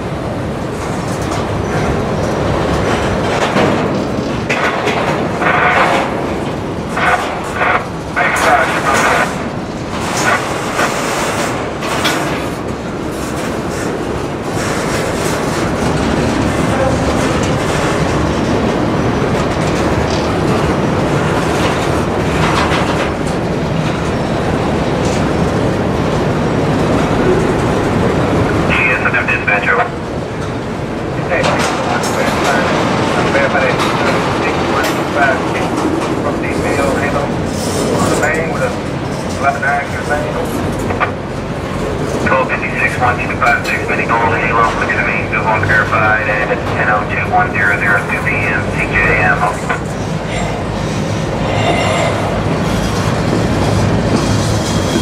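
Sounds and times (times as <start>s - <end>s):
train wheels rumbling on rail: 0.0s - 55.0s
sharp clanks and rattles: 0.7s - 24.2s, 31.4s - 42.5s.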